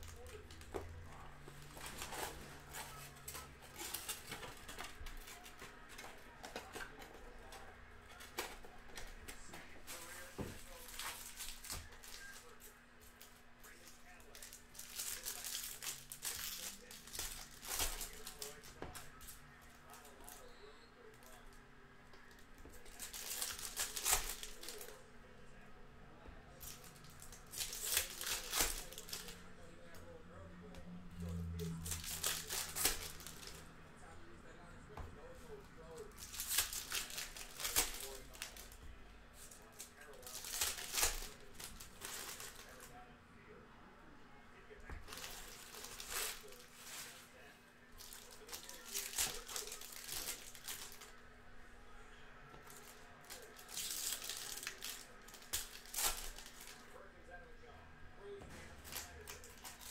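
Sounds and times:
foil wrappers tearing and crinkling: 0.0 - 20.5, 22.5 - 25.0, 26.6 - 29.4, 31.6 - 33.6, 36.0 - 38.8, 39.4 - 43.0, 44.9 - 47.3, 48.0 - 51.2, 52.6 - 57.0, 58.8 - 59.9.

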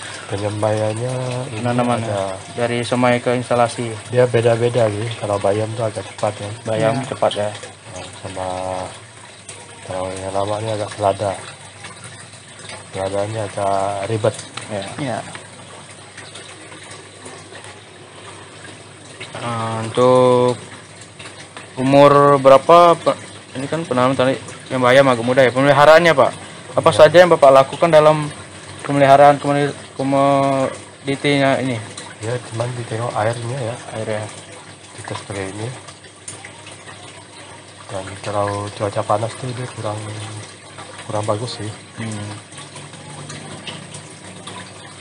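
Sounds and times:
water running through channels: 0.0 - 45.0.

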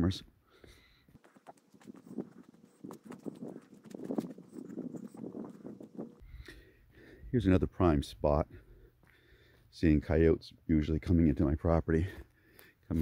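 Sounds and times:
footsteps on dirt: 0.6 - 6.2.

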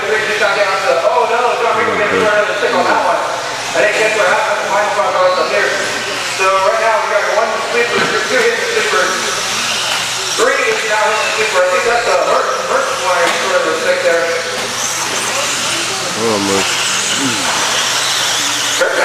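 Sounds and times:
rc car motors whining: 0.2 - 19.0
person talking: 16.2 - 17.6.

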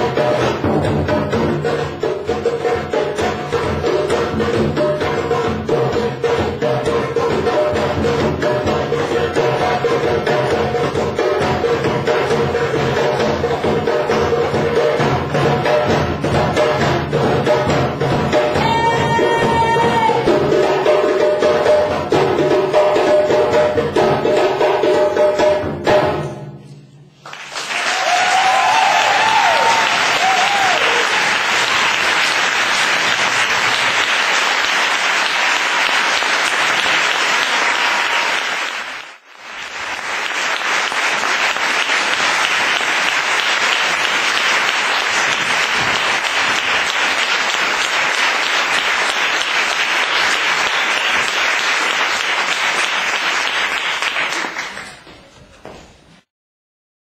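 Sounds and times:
audience applauding: 27.2 - 55.2.

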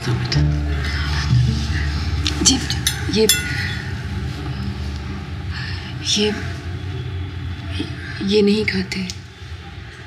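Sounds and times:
metal spoon clinking on ceramic dish: 2.7 - 3.8.

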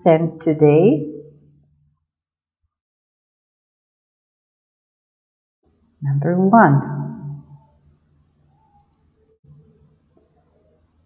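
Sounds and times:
woman speaking: 0.0 - 1.1, 6.0 - 7.4.

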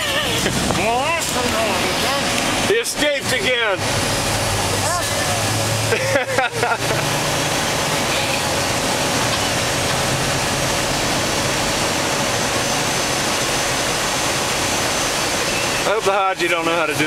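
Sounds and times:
armoured vehicle engine roar inside cabin: 0.0 - 17.0.

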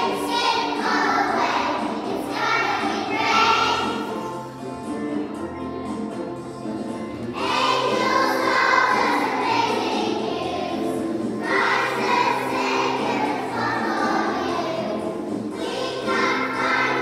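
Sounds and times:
children singing: 0.0 - 4.5, 7.4 - 17.0
musical accompaniment: 0.0 - 17.0.

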